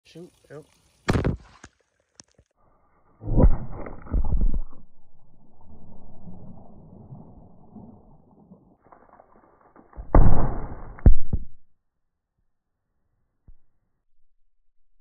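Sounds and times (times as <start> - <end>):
deep muffled underwater gunshot boom: 1.1 - 1.5, 10.0 - 11.5
low rumble: 3.2 - 8.7
sharp crack: 9.7 - 11.4.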